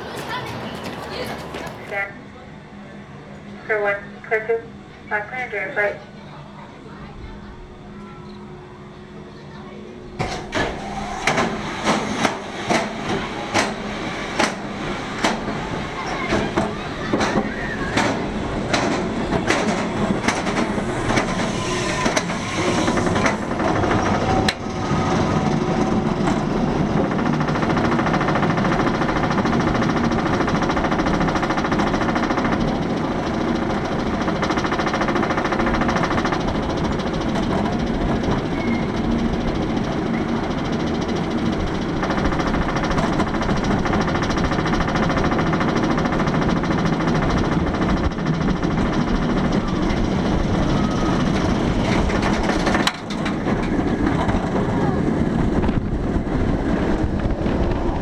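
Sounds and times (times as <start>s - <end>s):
roller coaster chain lift rattling: 0.0s - 2.0s, 10.2s - 58.0s.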